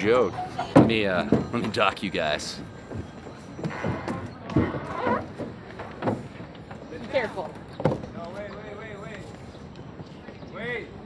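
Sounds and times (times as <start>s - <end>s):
boat bumping against dock: 0.4s - 8.4s
thumps and knocks of climbing out: 0.6s - 2.0s, 2.6s - 6.8s.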